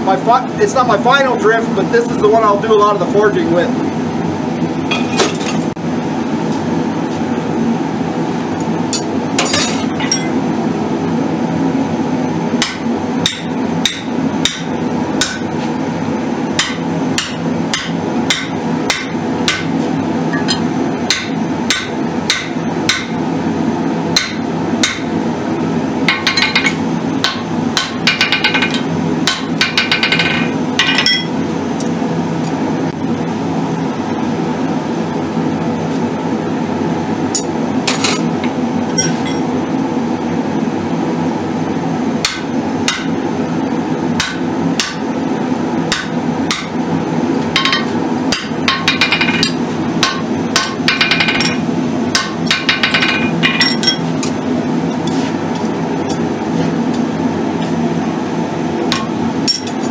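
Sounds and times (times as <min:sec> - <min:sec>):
hammer striking metal on anvil: 0:09.0 - 0:10.4, 0:12.6 - 0:15.5, 0:16.6 - 0:19.7, 0:20.3 - 0:23.2, 0:24.2 - 0:25.1, 0:26.1 - 0:31.3, 0:39.0 - 0:39.4, 0:42.2 - 0:43.2, 0:44.2 - 0:45.0, 0:45.9 - 0:46.8, 0:47.6 - 0:54.4, 0:58.9 - 0:59.9.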